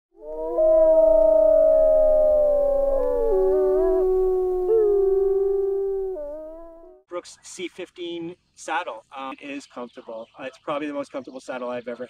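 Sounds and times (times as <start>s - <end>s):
wolves howling: 0.2s - 7.0s.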